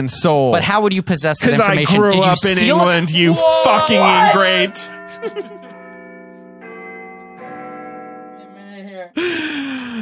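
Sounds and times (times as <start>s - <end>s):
bell-like musical chords: 1.6s - 8.9s.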